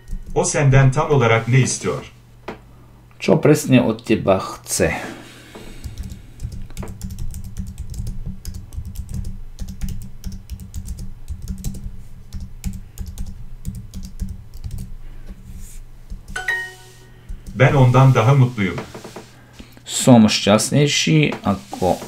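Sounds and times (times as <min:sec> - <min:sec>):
typing on a keyboard: 0:00.0 - 0:00.4, 0:05.8 - 0:14.9
short bright chime: 0:16.4 - 0:17.1.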